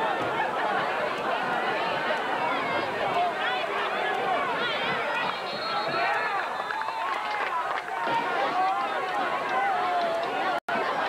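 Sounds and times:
babble of crowd voices: 0:00.0 - 0:11.0.

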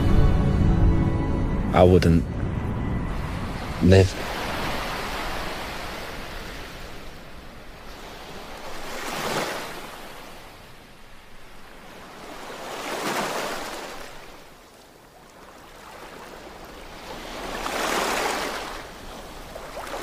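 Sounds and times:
surf rushing: 0:01.8 - 0:14.6, 0:15.6 - 0:20.0
waves breaking: 0:01.8 - 0:20.0.

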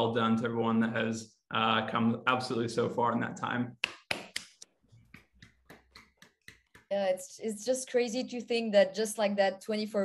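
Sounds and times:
hand clapping: 0:03.8 - 0:07.0.

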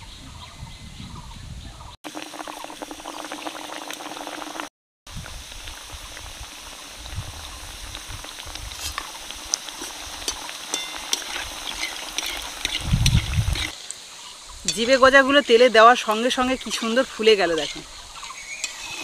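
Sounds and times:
pastries sizzling in hot oil: 0:02.1 - 0:19.0.

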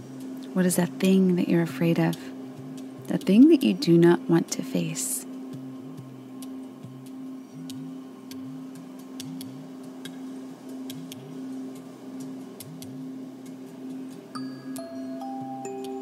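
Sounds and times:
ambient meditation music: 0:00.0 - 0:16.0
faint ticks and clicks: 0:05.5 - 0:14.9.

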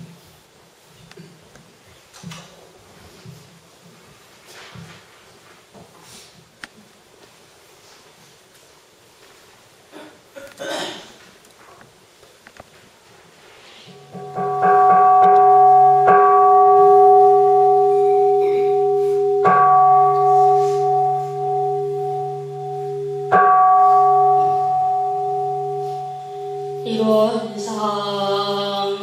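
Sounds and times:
low steady hum: 0:13.9 - 0:29.0
bowl bell ringing: 0:14.0 - 0:28.5.

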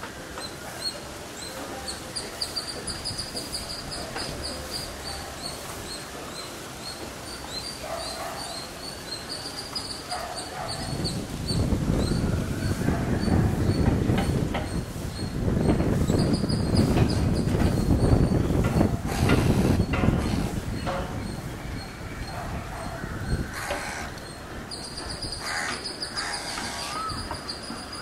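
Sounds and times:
small birds chirping: 0:00.3 - 0:19.0.

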